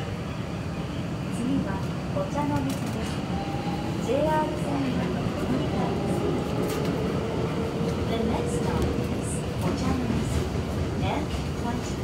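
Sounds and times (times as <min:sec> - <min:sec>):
subway train wheels rumbling: 0:00.0 - 0:12.0
train drive whine: 0:00.0 - 0:12.0.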